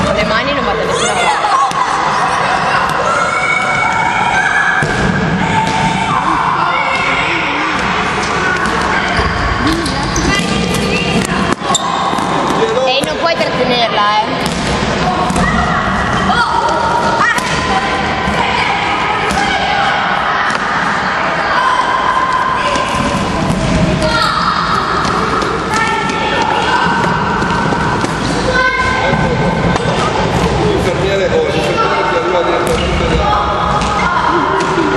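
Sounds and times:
children shouting and chattering: 0:00.0 - 0:34.9
balls bouncing on wooden floor: 0:07.7 - 0:13.5.

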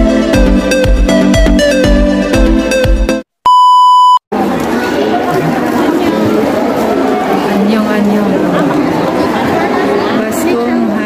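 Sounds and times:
electronic dance music: 0:00.0 - 0:03.2
high test-tone beep: 0:03.5 - 0:04.2.

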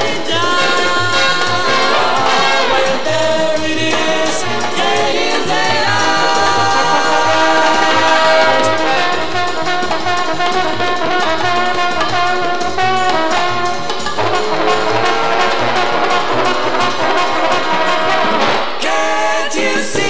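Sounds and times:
steady bass beat: 0:00.0 - 0:18.4
jazz trombone ensemble: 0:00.0 - 0:19.8.

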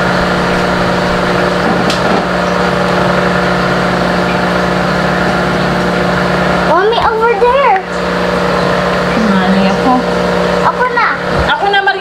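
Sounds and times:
small motor humming: 0:00.0 - 0:12.0
voices: 0:09.0 - 0:12.0.

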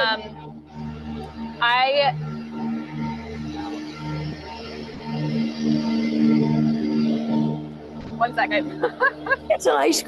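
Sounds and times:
low wavering hum: 0:00.0 - 0:10.0.

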